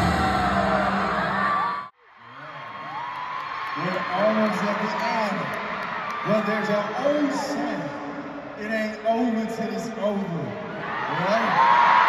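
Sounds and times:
amplified pop music with vocals: 0:00.0 - 0:01.9
crowd cheering and screaming: 0:00.0 - 0:08.0, 0:10.6 - 0:12.0.

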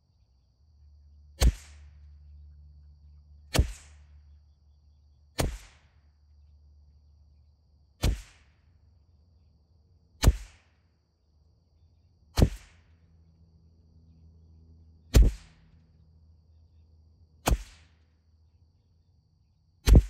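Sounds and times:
rifle shots: 0:03.5 - 0:04.0.

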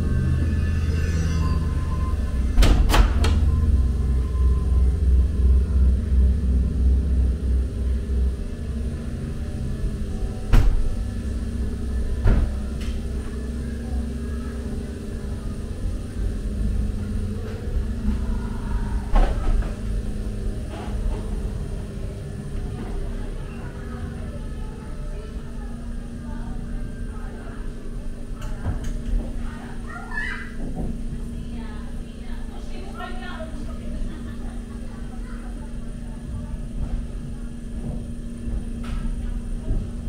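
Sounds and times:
ride car rumbling on track: 0:00.0 - 0:40.0.

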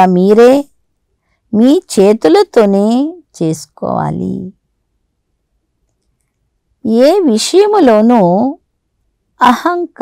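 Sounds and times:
woman speaking: 0:00.0 - 0:00.7, 0:01.5 - 0:04.6, 0:06.8 - 0:08.6, 0:09.4 - 0:10.0.

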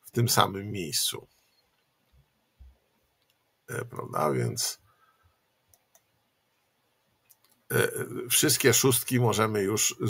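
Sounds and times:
man saying eh: 0:03.7 - 0:04.8, 0:07.7 - 0:10.0.

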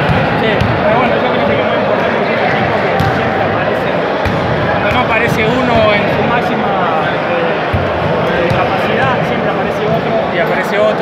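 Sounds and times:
basketballs bouncing on court: 0:00.0 - 0:01.7, 0:02.6 - 0:06.6, 0:07.6 - 0:10.2
echoing hubbub of voices: 0:00.0 - 0:11.0.

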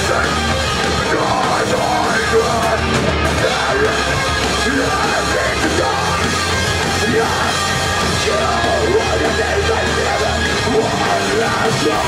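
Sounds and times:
drums: 0:00.0 - 0:12.0
electric guitars: 0:00.0 - 0:12.0
live rock band playing: 0:00.0 - 0:12.0
person singing into microphone: 0:01.0 - 0:12.0.

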